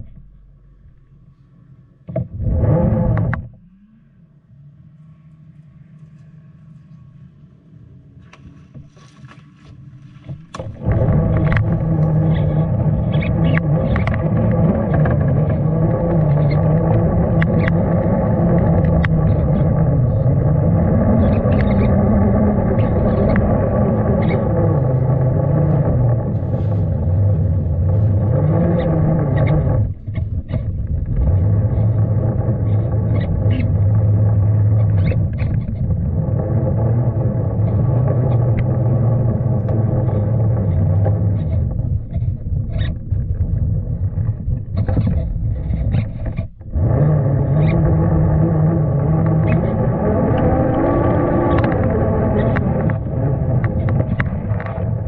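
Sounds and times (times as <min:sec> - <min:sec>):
electric motor and drivetrain whining: 0:00.0 - 0:08.9, 0:09.7 - 0:55.0.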